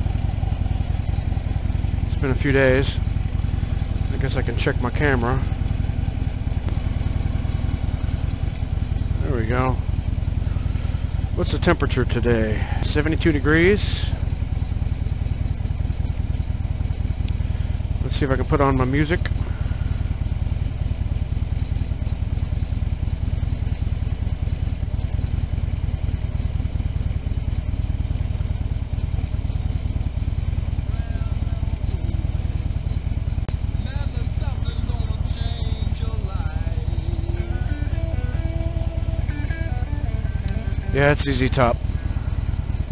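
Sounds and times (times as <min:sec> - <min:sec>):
motorcycle engine idling: 0:00.0 - 0:42.9.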